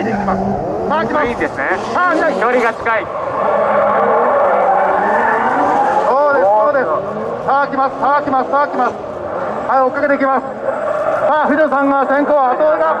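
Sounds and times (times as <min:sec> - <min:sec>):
car engines revving loud: 0:00.0 - 0:13.0.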